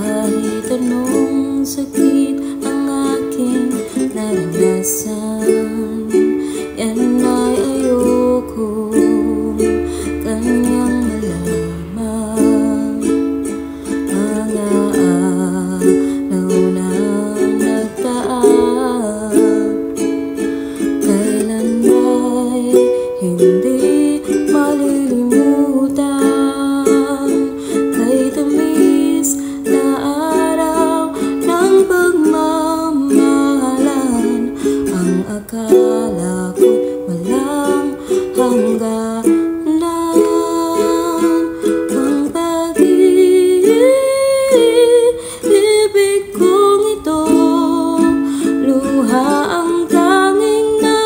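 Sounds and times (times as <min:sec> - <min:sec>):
ukulele strumming: 0:00.0 - 0:51.0
woman singing a slow ballad: 0:00.0 - 0:51.0.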